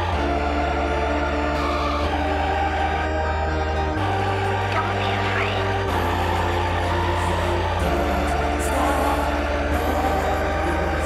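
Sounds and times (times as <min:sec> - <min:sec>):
house music with synth pads: 0:00.0 - 0:11.0.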